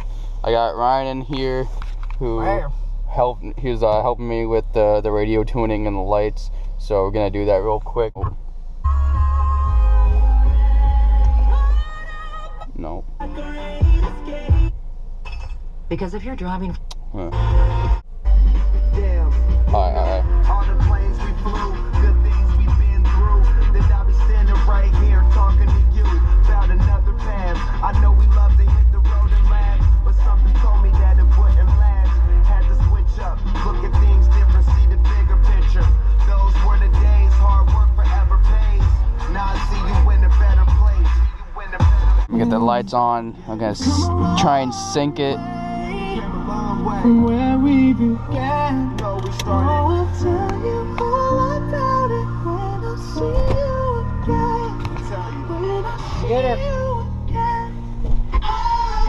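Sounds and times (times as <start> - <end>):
rapping over hip-hop beat: 0.0 - 8.3, 12.7 - 14.7, 18.3 - 57.7
car stereo music with deep bass: 0.0 - 59.0.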